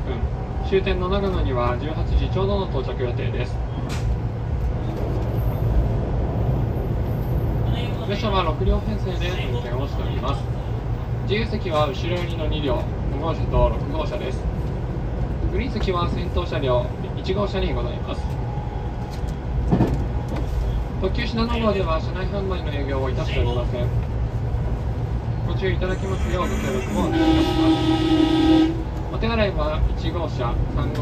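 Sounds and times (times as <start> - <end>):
train interior rumble: 0.0 - 31.0.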